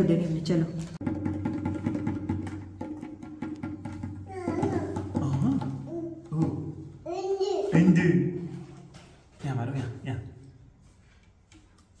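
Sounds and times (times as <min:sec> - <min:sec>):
hand drum struck quickly: 0:01.0 - 0:06.7.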